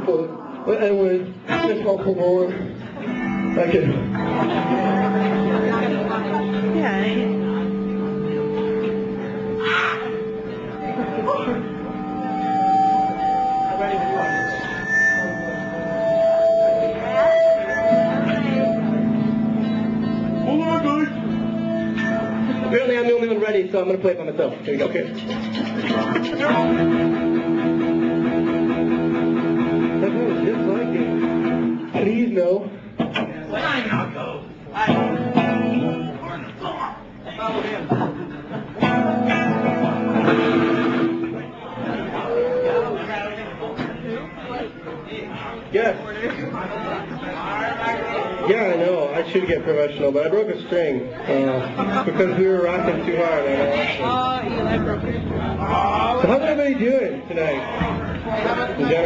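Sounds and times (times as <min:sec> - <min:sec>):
electric guitar holding notes: 0:02.6 - 0:22.8, 0:24.8 - 0:32.0, 0:38.8 - 0:41.4
voices murmuring: 0:02.7 - 0:23.4, 0:24.5 - 0:26.9.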